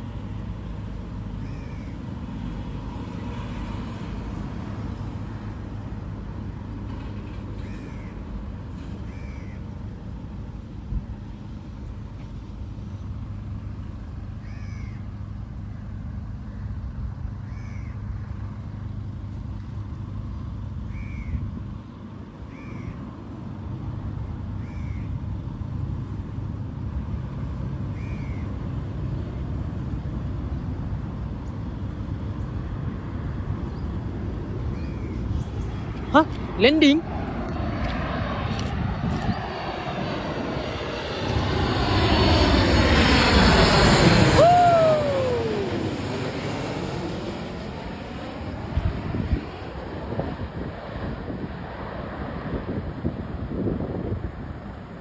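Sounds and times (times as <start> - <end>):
bird calling: 1.4 - 2.0, 7.6 - 8.2, 9.0 - 9.7, 14.4 - 15.1, 17.4 - 18.1, 20.9 - 21.4, 22.5 - 23.1, 24.6 - 25.2, 27.9 - 28.6, 34.7 - 35.8.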